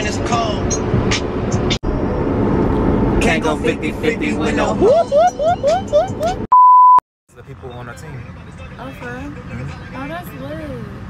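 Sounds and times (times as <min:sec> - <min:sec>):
censor bleep: 0:06.5 - 0:07.0.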